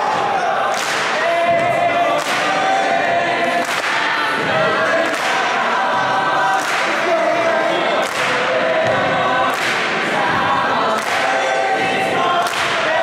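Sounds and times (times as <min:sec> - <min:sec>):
a cappella choir singing: 0:00.0 - 0:13.0.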